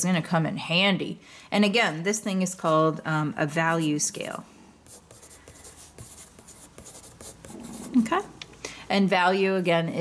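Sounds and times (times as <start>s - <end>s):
pencil scratching on paper: 4.8s - 8.2s.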